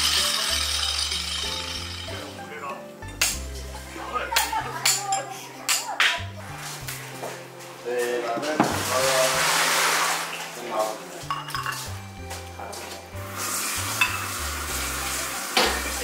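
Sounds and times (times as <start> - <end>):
food sizzling in hot oil: 0.0 - 2.4, 8.6 - 10.6, 13.2 - 16.0
background music: 0.0 - 16.0.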